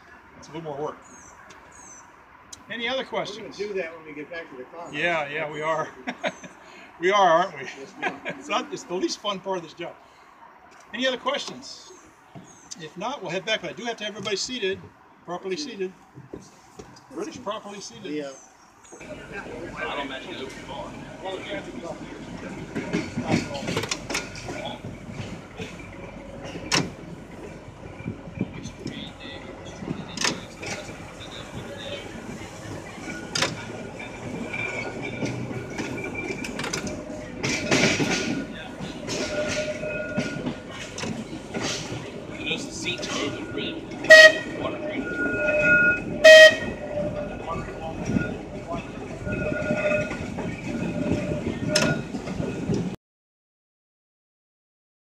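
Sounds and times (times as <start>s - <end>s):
tram rumble: 0.0s - 53.0s
wheels clicking on track: 10.7s - 53.0s
loud pitched horn blasts: 43.2s - 48.4s, 49.2s - 52.0s.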